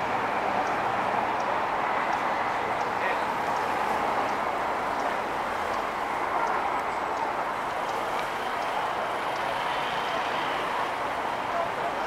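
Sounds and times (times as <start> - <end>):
passing traffic hum: 0.0 - 12.0.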